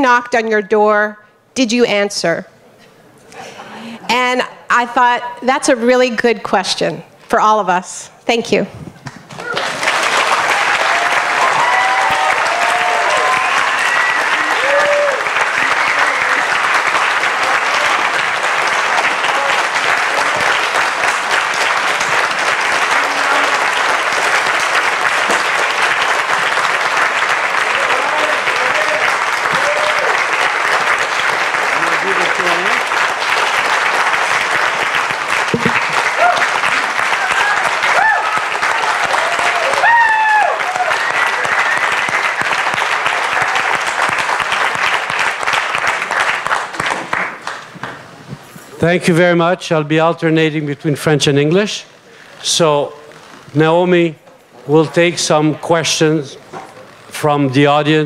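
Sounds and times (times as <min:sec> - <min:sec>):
large audience applauding: 0:09.3 - 0:48.2.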